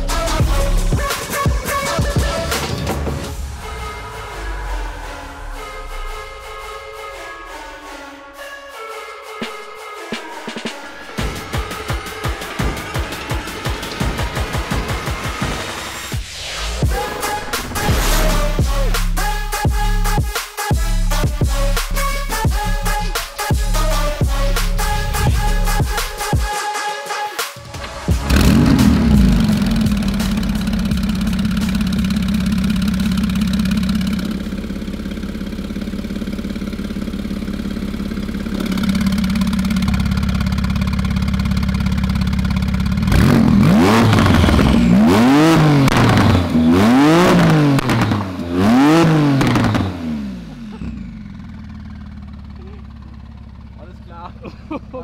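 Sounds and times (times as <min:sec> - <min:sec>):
sports car engine idling and revving: 0:00.0 - 0:07.1, 0:11.2 - 0:26.4, 0:27.7 - 0:55.0.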